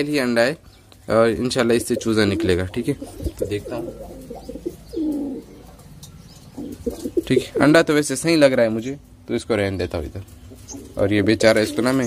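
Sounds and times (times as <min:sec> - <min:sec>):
pigeons cooing: 0:01.3 - 0:07.9, 0:10.2 - 0:12.0.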